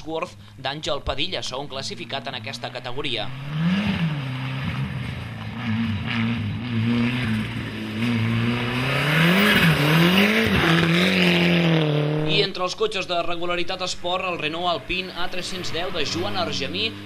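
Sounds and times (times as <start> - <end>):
rally car engine accelerating hard: 3.2 - 12.5, 14.6 - 17.0.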